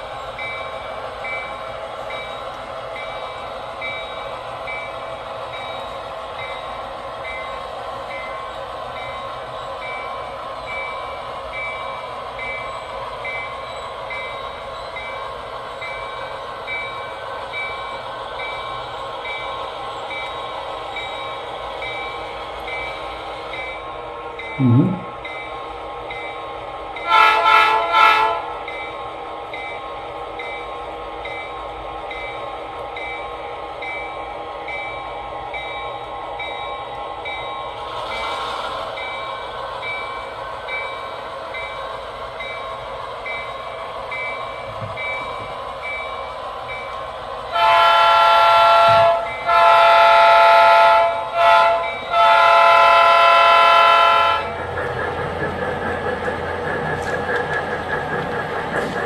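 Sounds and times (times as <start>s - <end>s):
model locomotive engine running: 0.0s - 59.0s
model locomotive horn: 27.0s - 28.6s, 47.5s - 54.6s.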